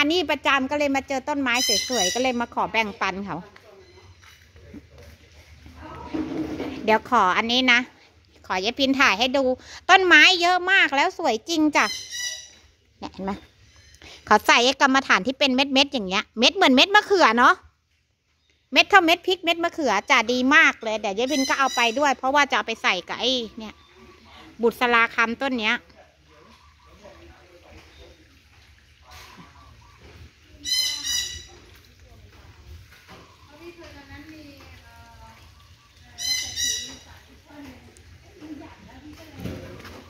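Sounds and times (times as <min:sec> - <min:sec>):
woman speaking: 0:00.0 - 0:04.1, 0:06.8 - 0:12.0, 0:13.0 - 0:13.5, 0:18.8 - 0:23.8, 0:24.6 - 0:25.8
bird squawking harshly: 0:11.8 - 0:12.6, 0:29.2 - 0:31.6, 0:36.2 - 0:37.1.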